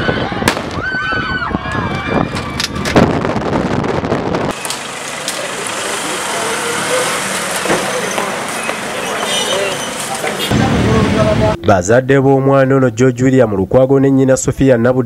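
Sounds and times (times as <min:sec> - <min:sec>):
crowd shouting: 0:00.0 - 0:02.8, 0:04.7 - 0:11.6
gunshot bangs: 0:00.4 - 0:00.8
road noise: 0:01.9 - 0:11.9
motorcycles passing: 0:04.5 - 0:11.6.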